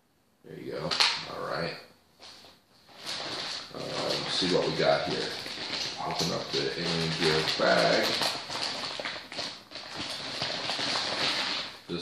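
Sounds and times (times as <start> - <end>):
plastic mailer bag crinkling: 2.9 - 12.0.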